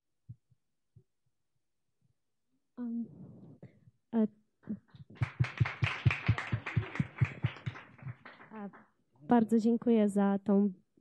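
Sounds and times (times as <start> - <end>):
audience applauding: 5.1 - 8.8.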